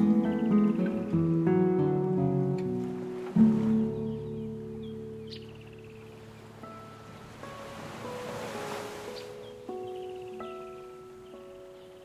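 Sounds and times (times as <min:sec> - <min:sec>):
classical guitar notes: 0:00.0 - 0:06.9
gentle ocean waves: 0:00.0 - 0:12.0.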